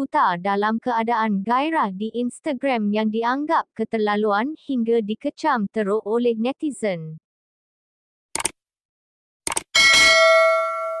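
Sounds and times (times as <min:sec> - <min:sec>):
bell ding: 0:09.8 - 0:11.0.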